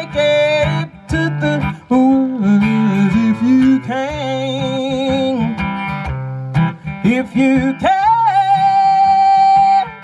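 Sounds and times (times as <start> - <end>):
acoustic guitar strumming blues: 0.0 - 10.0.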